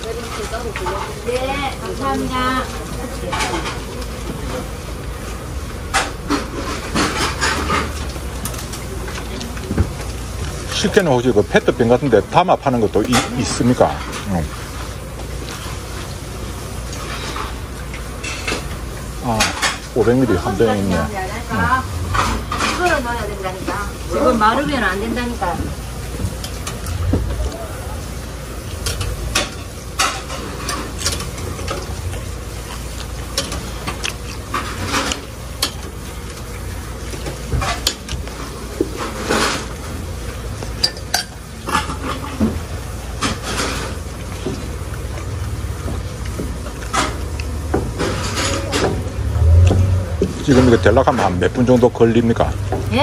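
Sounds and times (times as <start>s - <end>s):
metal utensils clinking: 5.9s - 9.7s, 12.4s - 14.3s, 40.8s - 42.6s, 48.0s - 49.1s.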